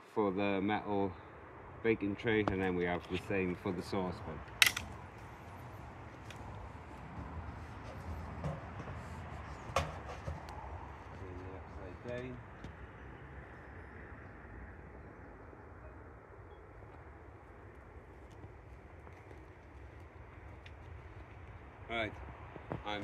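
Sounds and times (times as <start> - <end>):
outdoor background rumble: 0.0 - 23.0.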